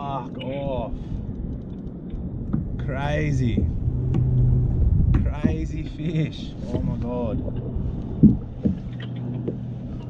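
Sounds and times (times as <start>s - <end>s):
faint clicks: 1.2s - 2.6s
dull knocks on kayak hull: 5.0s - 5.8s, 8.2s - 9.6s.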